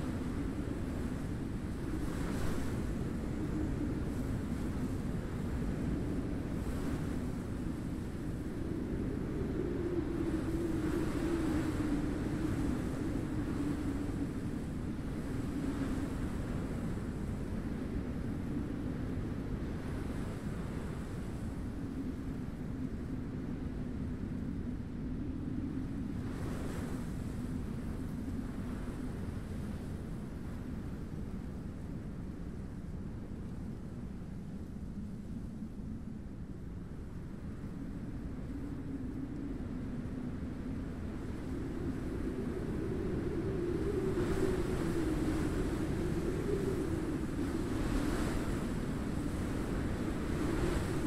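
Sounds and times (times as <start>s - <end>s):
rushing wind moaning: 0.0s - 30.8s, 34.6s - 51.0s.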